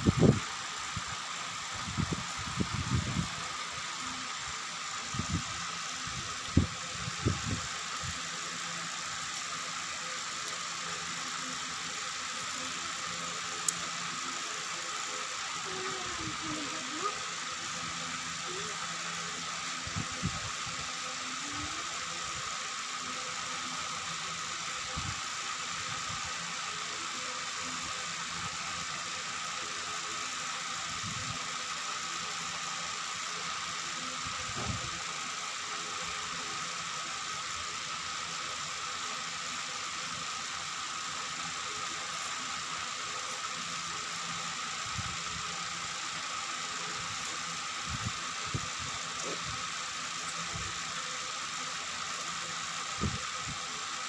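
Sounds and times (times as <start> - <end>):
background hum and hiss: 0.0 - 54.0.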